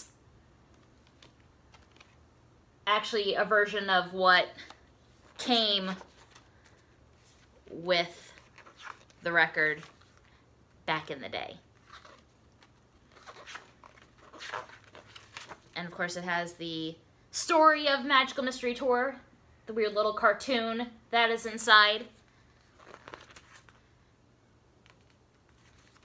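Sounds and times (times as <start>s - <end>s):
paper booklet rustling: 0.7s - 2.2s, 4.5s - 10.4s, 11.6s - 15.8s, 22.0s - 23.9s, 24.8s - 26.0s.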